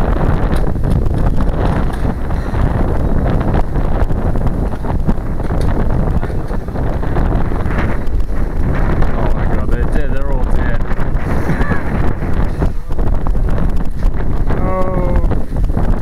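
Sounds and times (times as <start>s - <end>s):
wind on microphone: 0.0s - 16.0s.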